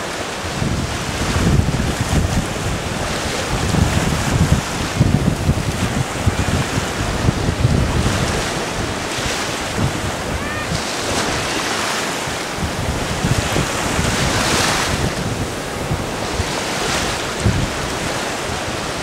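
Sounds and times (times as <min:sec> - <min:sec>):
surf washing up a beach: 0:00.0 - 0:19.0
wind buffeting microphone: 0:00.0 - 0:19.0.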